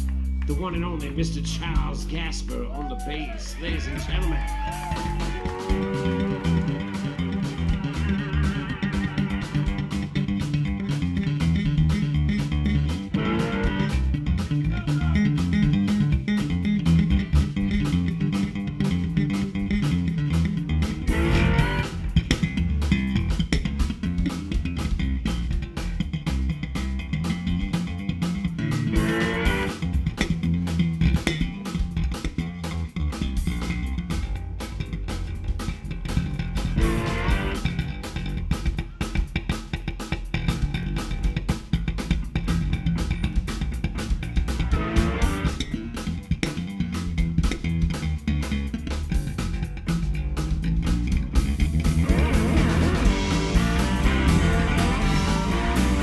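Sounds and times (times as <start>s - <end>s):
drums keeping time: 0.0s - 56.0s
electric bass guitar solo: 0.0s - 56.0s.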